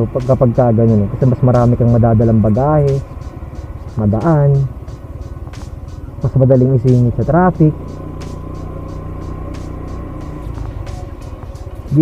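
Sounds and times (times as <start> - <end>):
background music with beat: 0.0 - 12.0
scooter engine running: 0.0 - 12.0.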